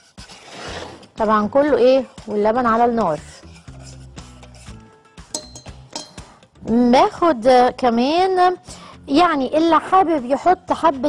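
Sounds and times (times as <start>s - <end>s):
soft background music: 0.0s - 11.0s
spoon scraping in a pan: 3.1s - 6.3s.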